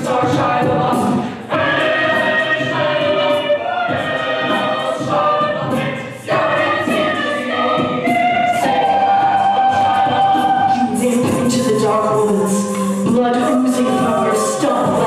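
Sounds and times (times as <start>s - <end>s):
a cappella group singing chords: 0.0s - 15.0s.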